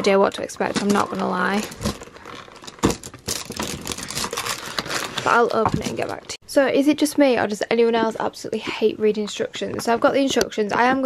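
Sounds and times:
paper and cardboard rustling: 0.6s - 6.3s.

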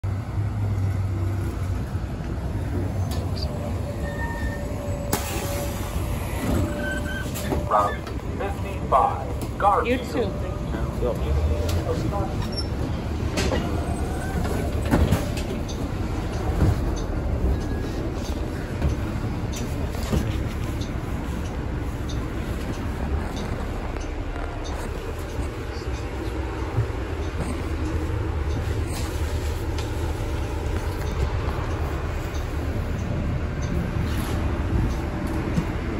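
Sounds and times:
bus approaching: 0.0s - 35.9s
low rumble of road traffic: 0.0s - 35.9s.

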